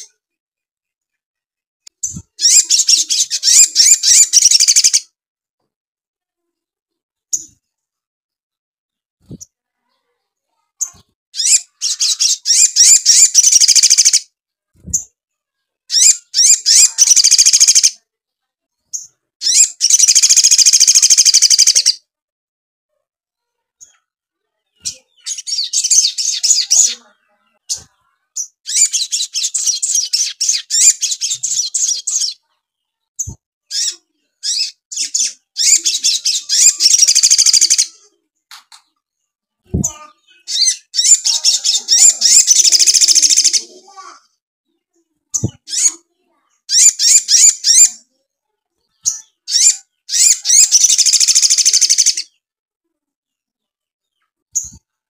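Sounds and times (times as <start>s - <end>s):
bird singing chattering phrases: 1.9s - 5.1s, 10.8s - 15.1s, 15.9s - 18.0s, 18.9s - 22.0s, 24.6s - 32.5s, 33.2s - 38.2s, 39.7s - 44.3s, 45.3s - 48.1s, 48.9s - 52.4s.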